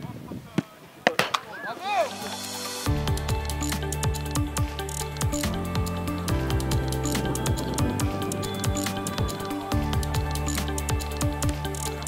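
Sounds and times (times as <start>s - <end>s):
background music with steady beat: 1.9s - 12.0s.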